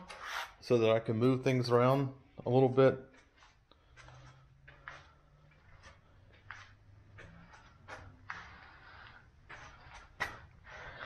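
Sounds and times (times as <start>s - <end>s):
footsteps and handling noise: 2.7s - 11.0s.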